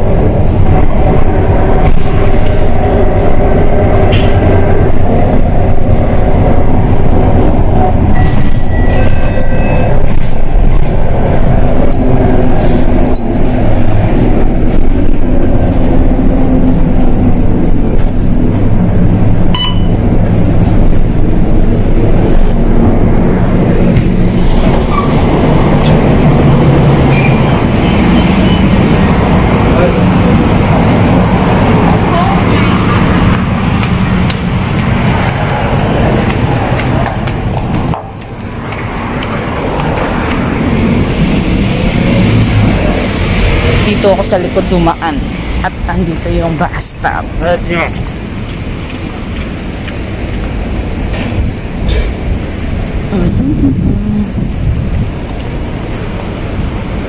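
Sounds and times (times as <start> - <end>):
bus engine and road noise: 0.0 - 57.0.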